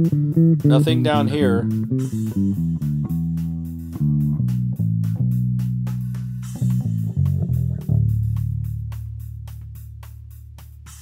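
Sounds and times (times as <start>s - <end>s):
plucked bass guitar notes: 0.0s - 10.6s.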